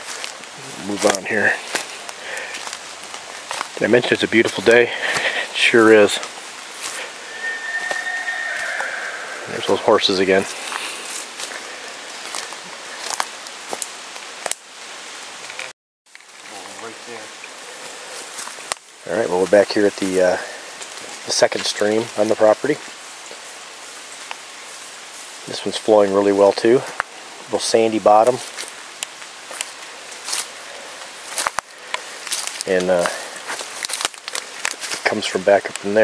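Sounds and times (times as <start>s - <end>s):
footsteps on wet leaves and twigs: 0.0s - 36.0s.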